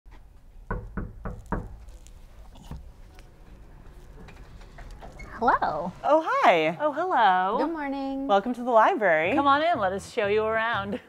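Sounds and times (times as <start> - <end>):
knocks on wooden door: 0.7 - 1.8.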